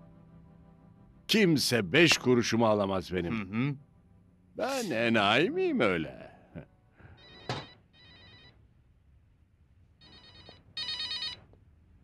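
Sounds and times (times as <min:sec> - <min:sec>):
telephone ringing electronically: 0:07.2 - 0:08.6, 0:10.0 - 0:11.5.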